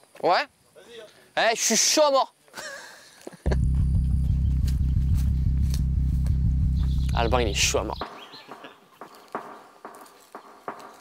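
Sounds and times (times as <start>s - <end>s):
synth bass line: 3.5s - 8.0s
light beat: 3.5s - 11.0s.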